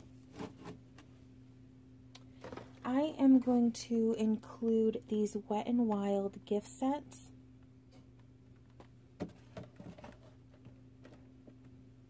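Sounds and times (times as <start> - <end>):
low steady hum: 0.0 - 12.0
box knocking in plastic basket: 9.2 - 11.2.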